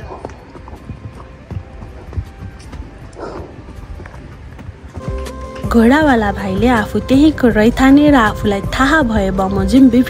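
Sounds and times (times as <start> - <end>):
horse hooves clopping on trail: 0.0 - 10.0.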